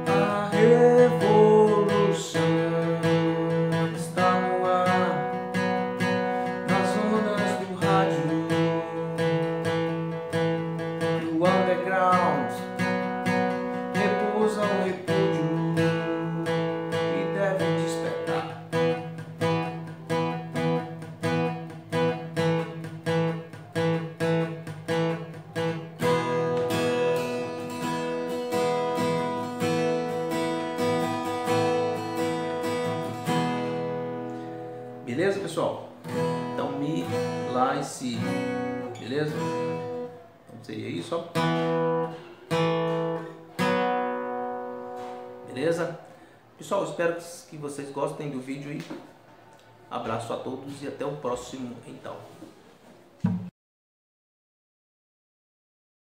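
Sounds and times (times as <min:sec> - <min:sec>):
acoustic guitar strumming: 0:00.0 - 0:46.8, 0:53.1 - 0:53.5.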